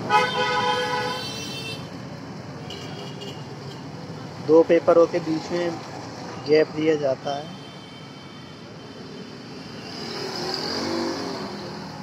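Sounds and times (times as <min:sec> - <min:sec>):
motor vehicle passing by: 0:09.8 - 0:12.0.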